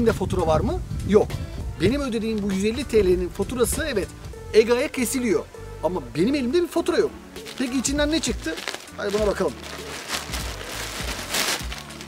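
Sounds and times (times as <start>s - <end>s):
background music: 0.0s - 12.0s
plastic bag crinkling: 7.4s - 12.0s.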